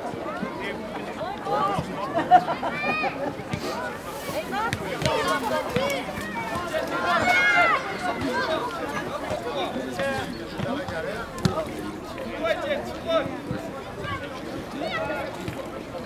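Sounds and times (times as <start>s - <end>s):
people talking and calling out: 0.0s - 16.0s.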